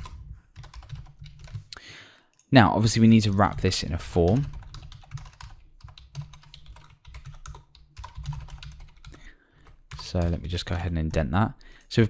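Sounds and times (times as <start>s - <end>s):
computer keyboard typing: 0.0s - 1.8s, 3.0s - 11.2s.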